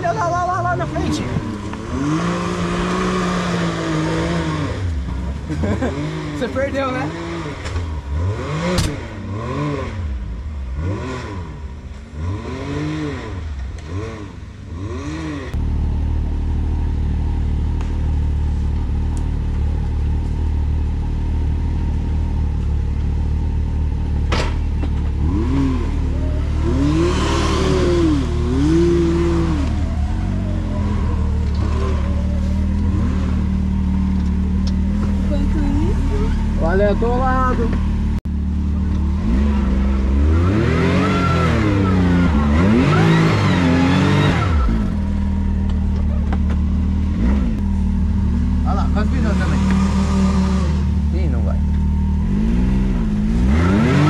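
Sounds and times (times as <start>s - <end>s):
low engine rumble: 0.0s - 12.4s, 13.3s - 54.0s
engine revving: 0.0s - 54.0s.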